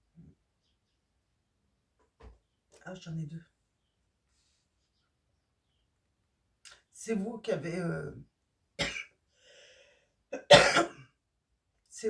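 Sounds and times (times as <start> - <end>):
woman coughing: 8.8 - 9.1, 10.4 - 11.1.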